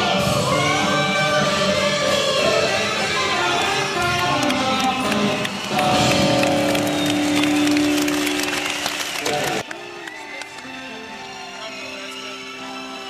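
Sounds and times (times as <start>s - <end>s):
vocals: 0.0s - 6.5s, 9.2s - 13.0s
rock band playing live: 0.0s - 9.4s
guitars: 0.0s - 9.7s.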